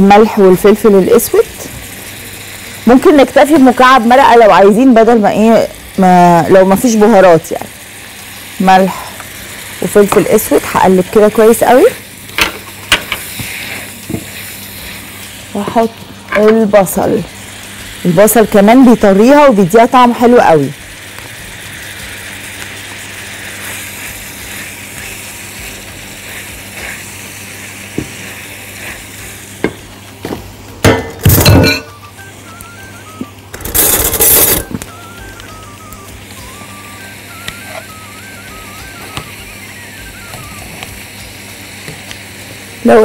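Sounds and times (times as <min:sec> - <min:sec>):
food sizzling in a frying pan: 0:00.0 - 0:43.0.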